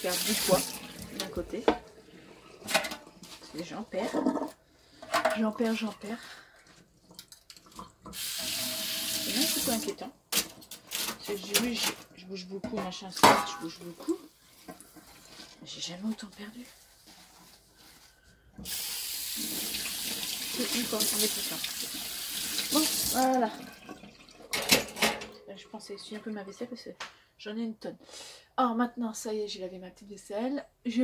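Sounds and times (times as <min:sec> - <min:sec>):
water tap running into sink: 0:00.0 - 0:02.6, 0:07.8 - 0:10.1, 0:18.6 - 0:25.0
dishes knocking and clinking: 0:01.6 - 0:01.9, 0:12.6 - 0:13.8, 0:24.5 - 0:25.4.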